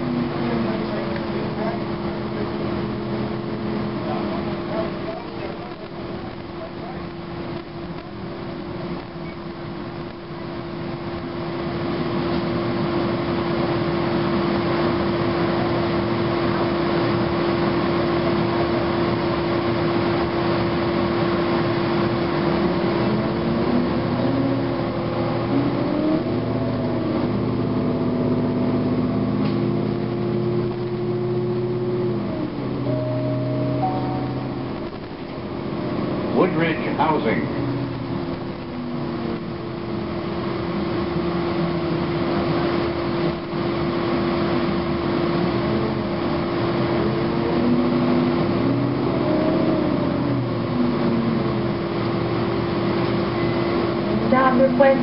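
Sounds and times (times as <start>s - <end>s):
bus engine whine: 0.0s - 55.0s
road rumble: 0.0s - 55.0s.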